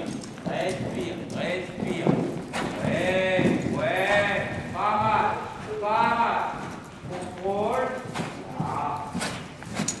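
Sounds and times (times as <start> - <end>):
horse hoofbeats on soft footing: 0.0 - 10.0.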